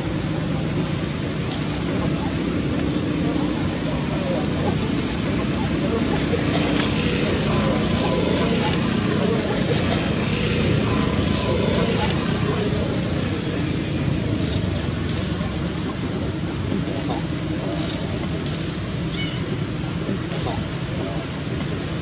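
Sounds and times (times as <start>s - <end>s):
indistinct voices: 0.0s - 22.0s
road traffic: 0.0s - 22.0s.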